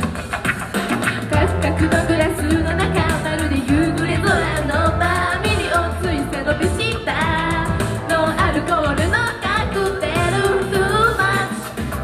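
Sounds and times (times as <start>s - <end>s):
pop backing track: 0.0s - 12.0s
female group singing pop: 1.3s - 12.0s.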